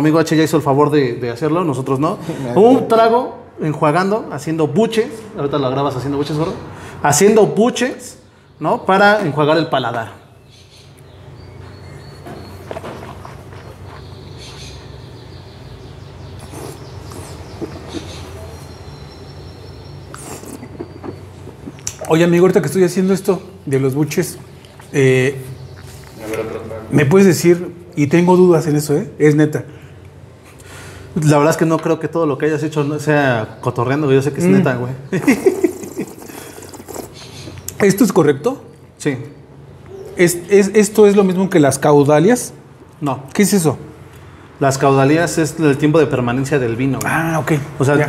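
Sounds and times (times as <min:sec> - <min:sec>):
steady low hum: 0:00.0 - 0:48.0
wine slurping in mouth: 0:20.1 - 0:22.0, 0:35.7 - 0:37.6.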